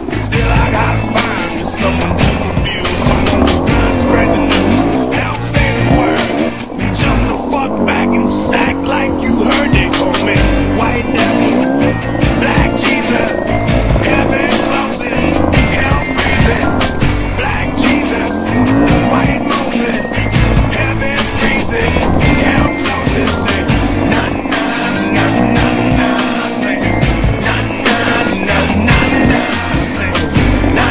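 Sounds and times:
dirt bike engine revving: 0:00.0 - 0:30.9
music track: 0:00.0 - 0:30.9.

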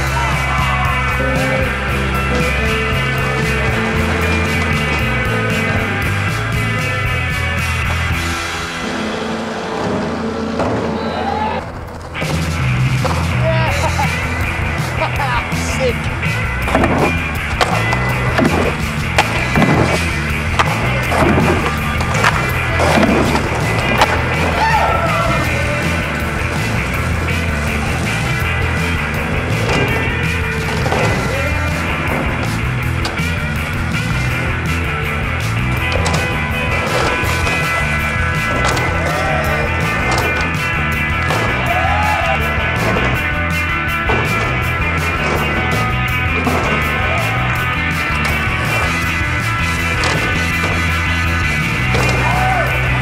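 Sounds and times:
skateboard wheels rolling on asphalt: 0:00.0 - 0:53.0
skateboard clacks: 0:02.3 - 0:07.1, 0:10.5 - 0:53.0.

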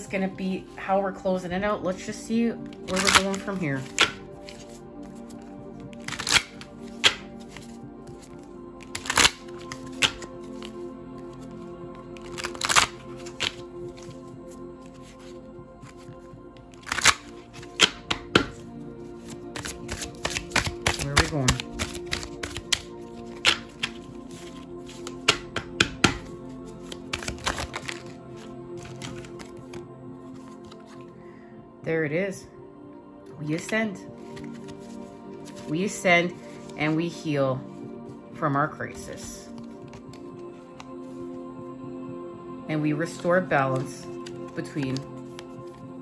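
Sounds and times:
soft background music: 0:00.0 - 0:46.0
cards being shuffled: 0:02.6 - 0:31.1, 0:33.6 - 0:36.9, 0:38.9 - 0:41.3, 0:43.1 - 0:45.8.

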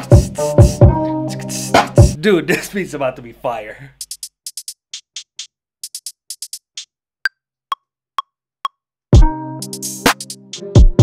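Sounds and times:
drum machine hi-hat ticks: 0:03.9 - 0:07.0, 0:07.7 - 0:11.0.

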